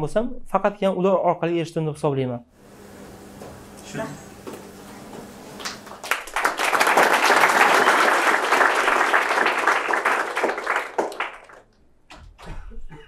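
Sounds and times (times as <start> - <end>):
audience applauding: 5.5 - 11.7.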